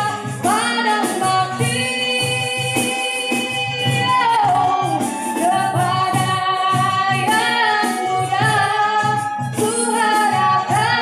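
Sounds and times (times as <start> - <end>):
violin: 0.0 - 11.0
woman singing: 0.0 - 11.0.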